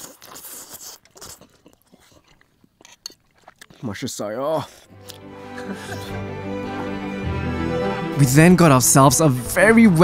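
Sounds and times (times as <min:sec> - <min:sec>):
soft chewing: 0:00.0 - 0:05.3
slurping soup: 0:00.0 - 0:07.0.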